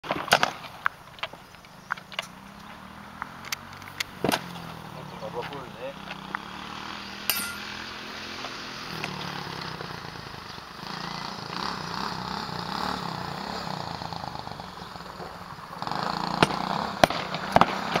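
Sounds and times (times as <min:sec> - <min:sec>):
swords striking wooden shields: 0:07.3 - 0:07.7.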